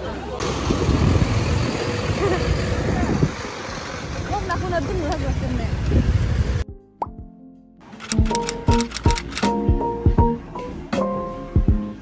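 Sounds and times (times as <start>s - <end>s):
traffic on a wet road: 0.0s - 6.6s.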